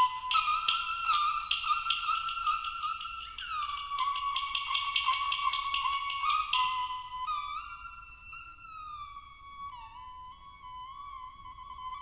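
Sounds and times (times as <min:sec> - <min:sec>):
sharp taps keeping a beat: 0:00.0 - 0:07.3
bowed fiddle melody: 0:00.0 - 0:12.0.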